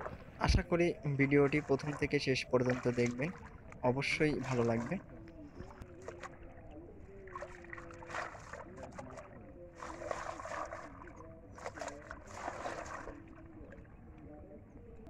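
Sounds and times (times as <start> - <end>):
water splashing and sloshing: 0.0 - 15.0.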